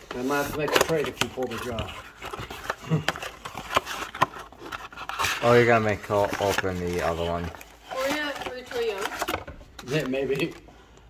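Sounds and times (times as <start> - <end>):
cardboard rustling: 0.0 - 10.6.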